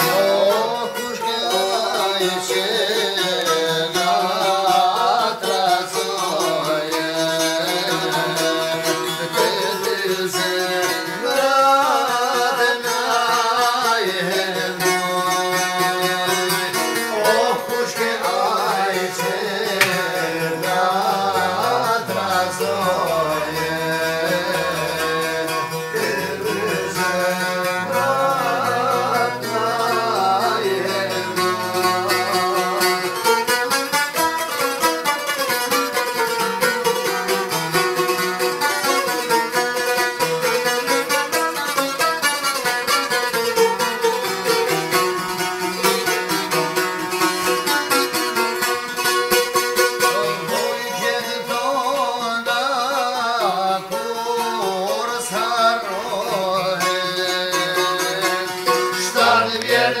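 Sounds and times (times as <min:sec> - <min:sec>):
man singing: 0:00.0 - 0:33.7, 0:49.8 - 1:00.0.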